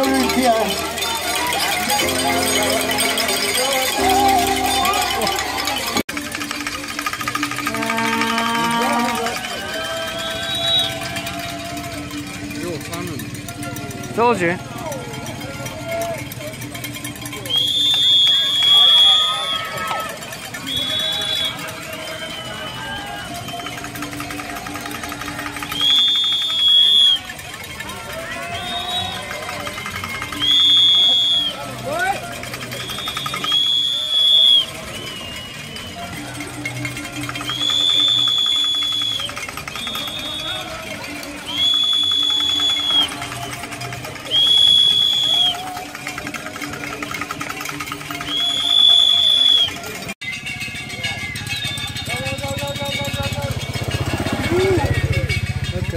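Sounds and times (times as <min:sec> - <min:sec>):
spectators shouting and cheering: 0:00.0 - 0:55.9
whistle blasts: 0:10.2 - 0:11.3, 0:17.4 - 0:23.0, 0:25.7 - 0:27.3, 0:28.5 - 0:29.4, 0:30.1 - 0:31.7, 0:32.7 - 0:36.1, 0:37.3 - 0:40.8, 0:41.4 - 0:45.8, 0:48.2 - 0:52.9.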